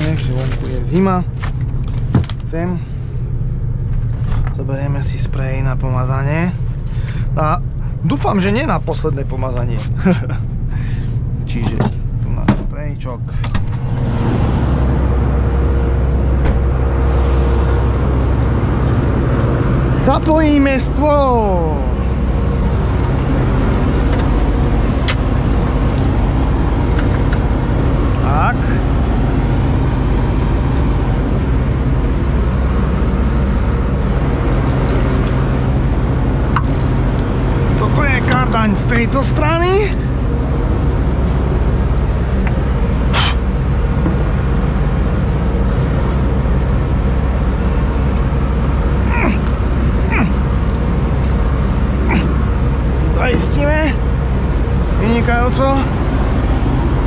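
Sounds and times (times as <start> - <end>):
diesel engine idling: 0.0 - 57.0.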